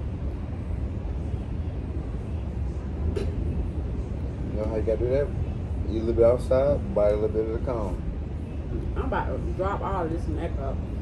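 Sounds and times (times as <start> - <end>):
road traffic: 0.0 - 11.0
wind: 0.0 - 11.0.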